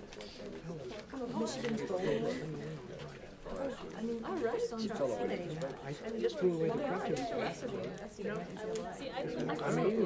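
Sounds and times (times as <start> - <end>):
chatter of people talking: 0.0 - 10.0.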